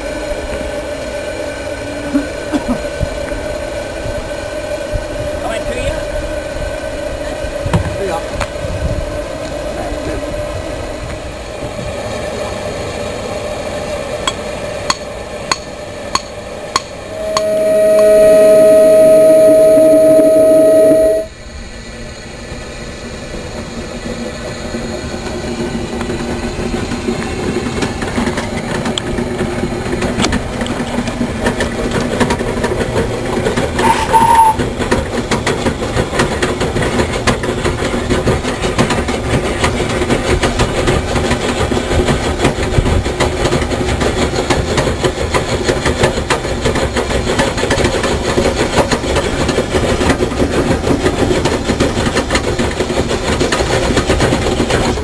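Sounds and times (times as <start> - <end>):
steam plant running noise: 0.0 - 55.0
steam whistle blast: 16.9 - 21.4, 33.8 - 34.6.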